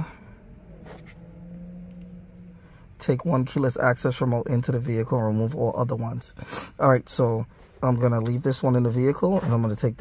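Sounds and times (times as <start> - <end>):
low hum inside car cabin: 0.0 - 10.0.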